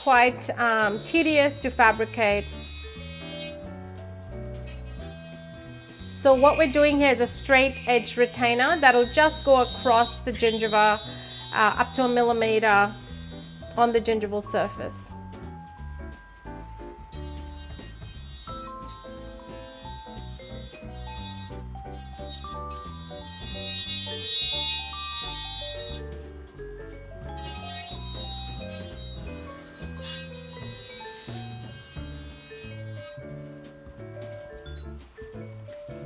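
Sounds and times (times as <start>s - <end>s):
background music melody over bass: 0.0s - 36.0s.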